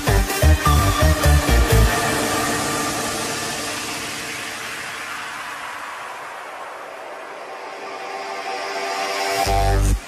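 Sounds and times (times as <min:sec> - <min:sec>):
electronic dance beat: 0:00.0 - 0:06.8
white noise wash with held tones: 0:01.8 - 0:10.0.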